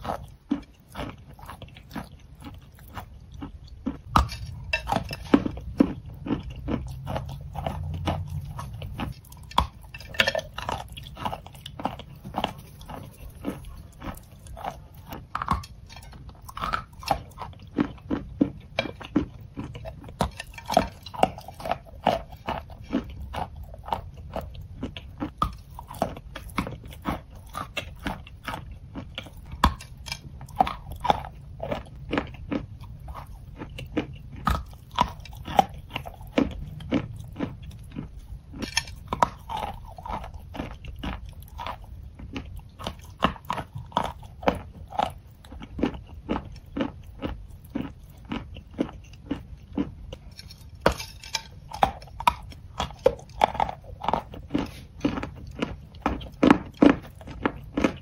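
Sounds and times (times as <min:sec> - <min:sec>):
chewing crunching chalk: 0:00.0 - 0:58.0.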